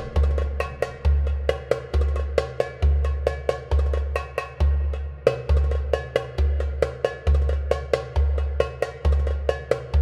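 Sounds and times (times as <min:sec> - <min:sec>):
percussion-led background music: 0:00.0 - 0:10.0.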